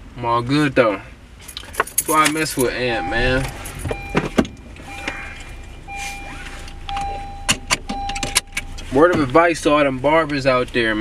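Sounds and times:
keys jangling and clicking: 1.4 - 2.8, 3.4 - 4.0
low rumble: 2.5 - 8.6.

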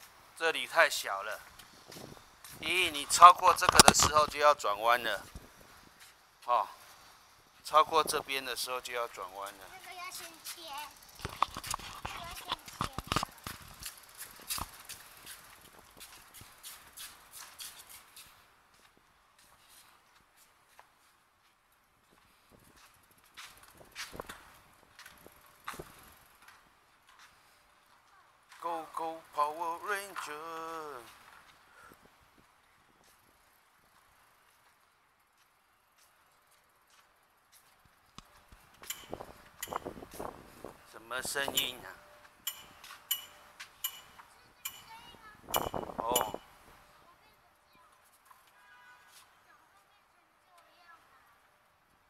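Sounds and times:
faint outdoor hiss: 0.0 - 52.0.

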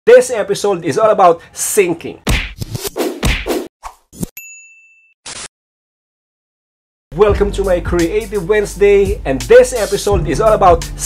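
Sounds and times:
sharp hits and whooshes: 2.3 - 4.0.

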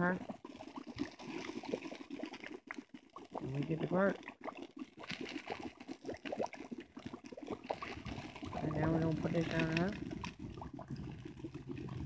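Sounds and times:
liquid bubbling and popping: 0.0 - 12.0
wood fire crackling: 0.0 - 12.0.

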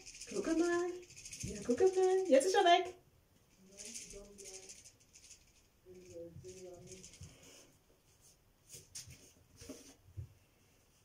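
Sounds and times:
faint quiet talking: 3.5 - 5.0, 5.8 - 7.7.

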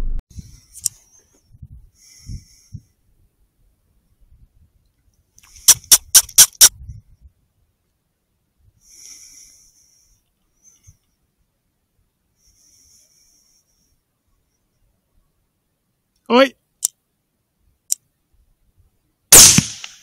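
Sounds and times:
drawn-out high sounds: 5.7 - 6.7.

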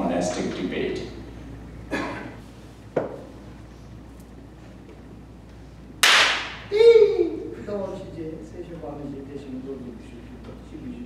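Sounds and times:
sharp hand clap: 6.0 - 6.7
man shouting a long call: 6.7 - 7.5.

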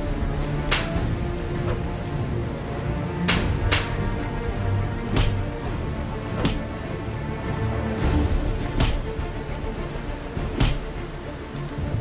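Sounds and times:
low music score: 0.0 - 12.0
steady rain falling: 0.0 - 12.0
sharp punch impacts: 5.1 - 5.6, 6.4 - 6.7, 8.7 - 9.2, 10.6 - 11.0.

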